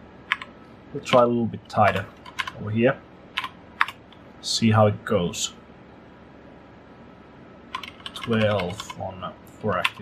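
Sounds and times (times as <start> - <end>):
low steady background noise: 0.0 - 10.0
computer keyboard clicks: 0.3 - 0.5, 1.8 - 2.6, 3.4 - 4.0, 7.7 - 9.0, 9.7 - 10.0.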